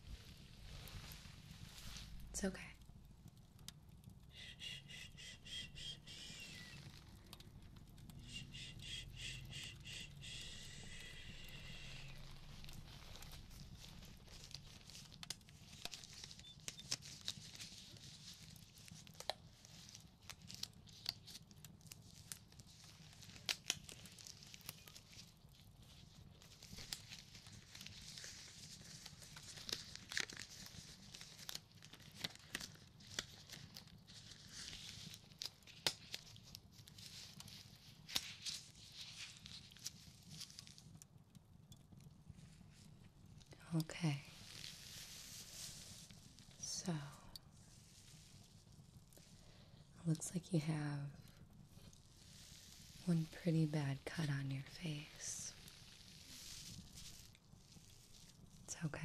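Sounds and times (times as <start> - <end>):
rubber gloves stretching and snapping: 5.8 - 43.5, 44.2 - 46.6, 47.3 - 49.9, 51.2 - 53.4, 55.5 - 58.7.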